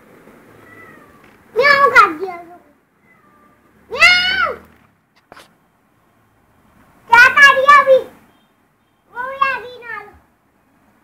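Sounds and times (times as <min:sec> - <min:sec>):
child's high-pitched call: 0:00.8 - 0:04.6, 0:07.1 - 0:10.2.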